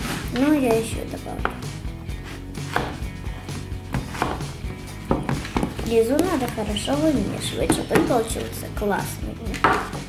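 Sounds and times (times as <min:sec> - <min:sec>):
spoon knocking and scraping tub: 0:00.0 - 0:08.6.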